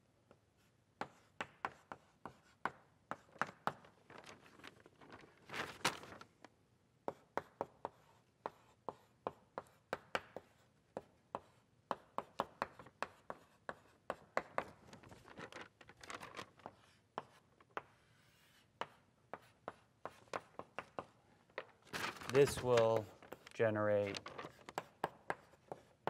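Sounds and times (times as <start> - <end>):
chalk tapping and scraping on blackboard: 0.3 - 3.9, 7.0 - 14.8, 16.6 - 21.8, 22.6 - 26.0.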